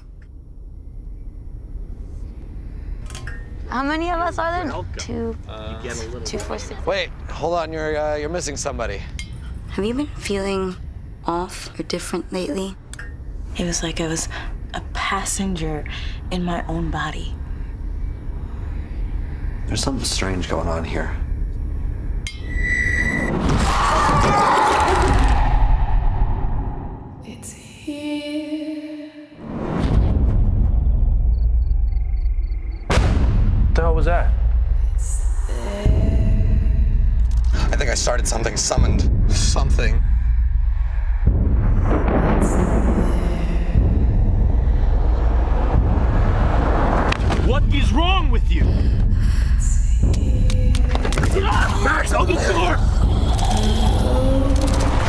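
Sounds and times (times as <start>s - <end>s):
low rumbling drone with hiss: 0.0s - 22.3s, 51.8s - 55.0s
low rumble: 0.0s - 23.8s, 24.8s - 27.4s, 29.5s - 55.0s
sudden hit: 32.9s - 34.7s.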